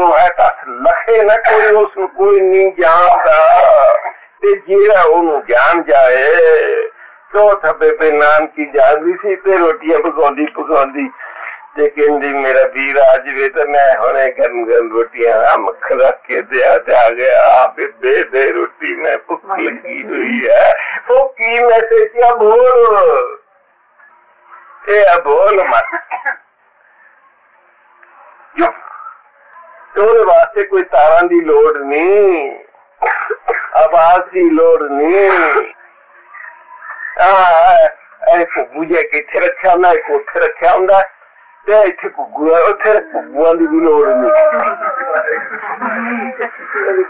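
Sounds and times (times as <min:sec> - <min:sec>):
man speaking: 0:00.0 - 0:23.4, 0:24.8 - 0:26.2, 0:28.6 - 0:29.2, 0:29.9 - 0:47.0
man talking: 0:00.0 - 0:23.4, 0:24.8 - 0:26.1, 0:28.6 - 0:29.0, 0:29.9 - 0:35.8, 0:36.4 - 0:47.0.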